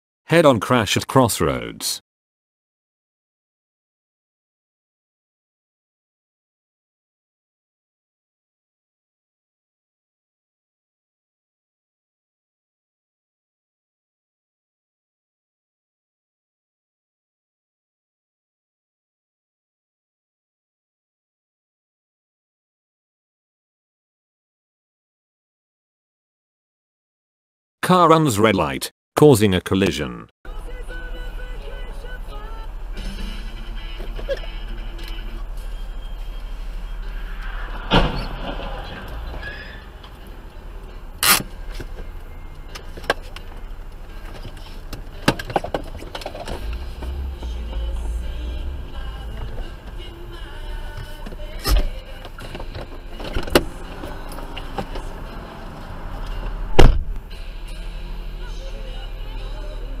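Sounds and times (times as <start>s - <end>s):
background music: 29.4s - 60.0s.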